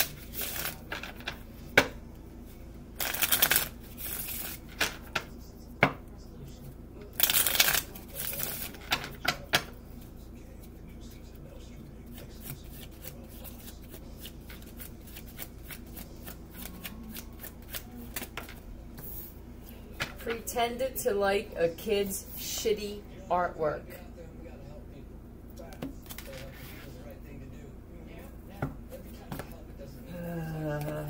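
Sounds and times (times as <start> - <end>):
cards shuffled by hand: 0.0 - 1.4, 3.0 - 5.1, 7.2 - 9.1, 12.1 - 18.6, 26.0 - 26.9.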